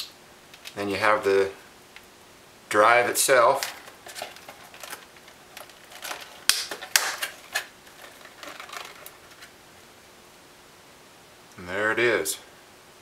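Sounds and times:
plastic packaging crackling: 3.4s - 9.6s
plastic snapping: 3.6s - 9.4s.

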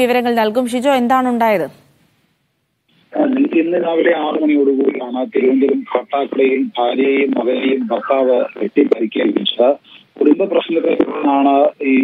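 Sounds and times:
man speaking over telephone: 3.1s - 12.0s.

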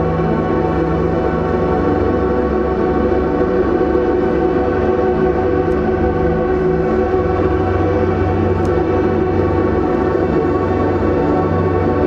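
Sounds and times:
ambient electric guitar drone: 0.0s - 12.0s.

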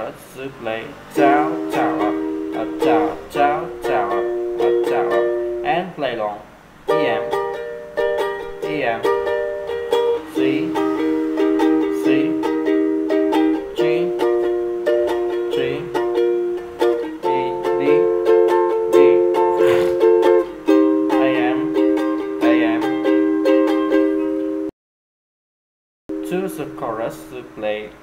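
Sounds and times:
ukulele strumming: 0.9s - 24.7s, 26.1s - 27.9s.

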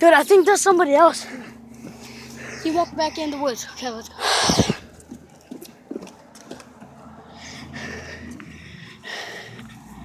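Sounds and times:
footsteps walking: 4.5s - 7.1s.

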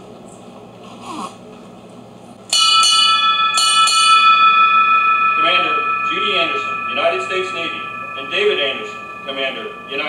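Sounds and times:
ship's bell double strikes: 2.5s - 10.0s.

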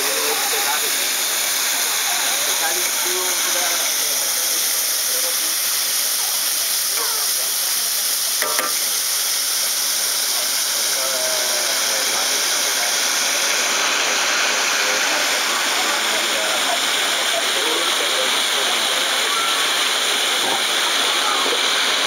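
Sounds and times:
faint voices talking: 0.0s - 22.0s
food sizzling in a wok: 0.0s - 22.0s.

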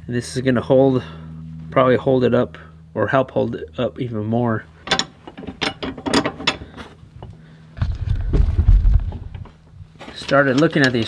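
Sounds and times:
loud low rumble: 0.0s - 4.8s, 7.0s - 10.0s
metallic clicks of bolt and nut: 4.8s - 6.7s.

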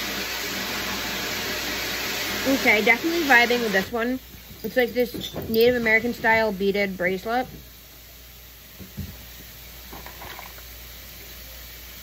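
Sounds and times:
steady background hiss: 2.4s - 12.0s.

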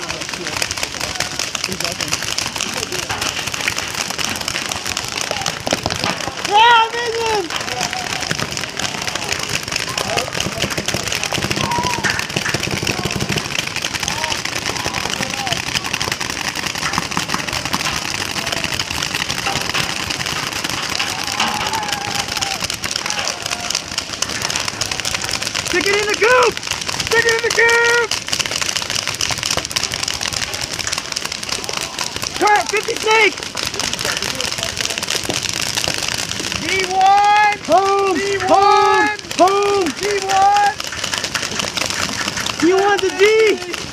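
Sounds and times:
paintball markers firing: 0.0s - 43.9s
voices: 0.0s - 43.9s.

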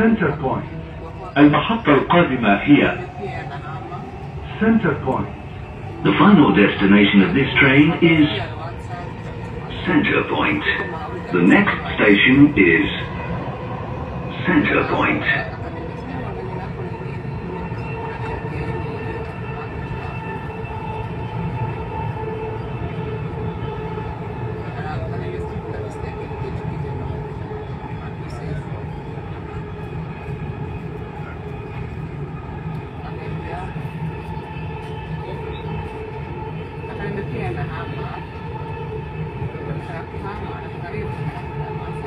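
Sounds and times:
train drive whine: 0.0s - 42.0s.

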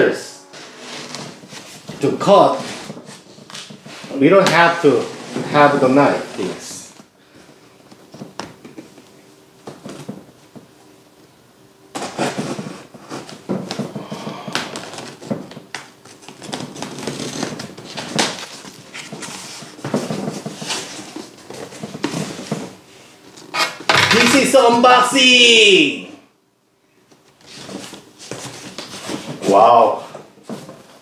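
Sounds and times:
tape and cardboard rustling: 0.5s - 7.0s, 12.0s - 24.6s, 27.1s - 31.0s.

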